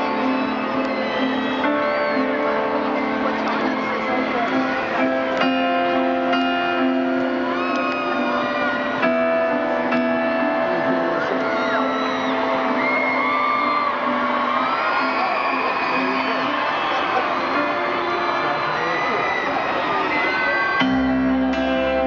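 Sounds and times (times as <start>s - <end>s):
fans screaming and whooping: 0.0s - 22.0s
piano chords ringing: 0.0s - 22.0s.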